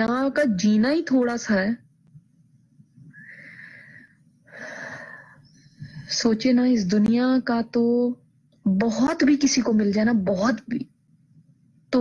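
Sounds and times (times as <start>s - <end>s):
woman breathing: 3.1s - 6.2s.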